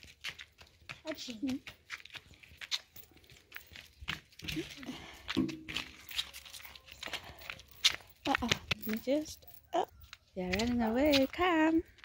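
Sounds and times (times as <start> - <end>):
light clicks and scuffs: 0.0 - 12.0.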